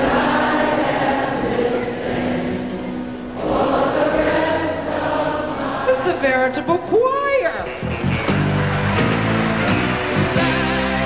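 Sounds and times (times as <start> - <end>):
crowd singing along: 0.0 - 6.9
orchestral music: 7.8 - 11.0.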